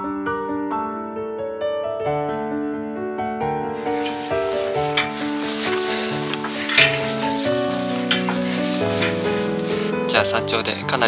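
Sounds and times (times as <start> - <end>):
background music: 3.5 - 11.0
boots crunching on scree: 3.8 - 10.1.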